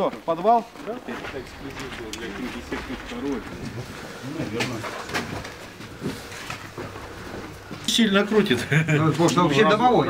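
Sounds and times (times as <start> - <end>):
indistinct voices talking quietly: 0.4 - 10.0.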